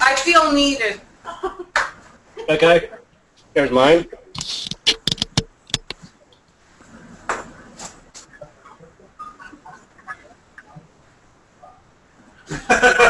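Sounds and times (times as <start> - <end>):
sharp clicks and knocks: 4.4 - 6.5
faint taps and clatter: 4.7 - 6.5.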